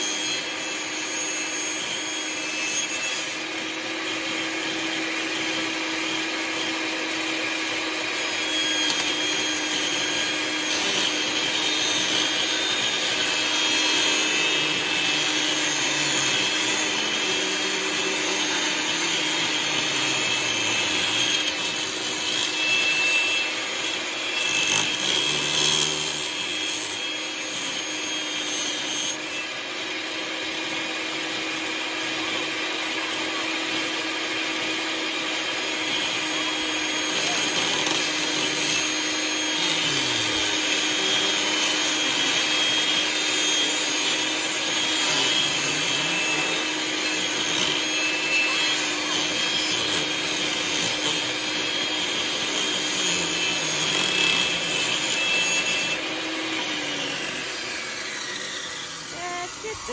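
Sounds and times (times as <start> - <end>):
table saw ripping wood: 0.0 - 59.9.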